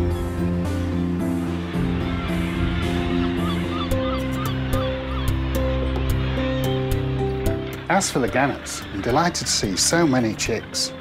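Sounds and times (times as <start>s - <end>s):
seabird colony calling: 0.9s - 11.0s.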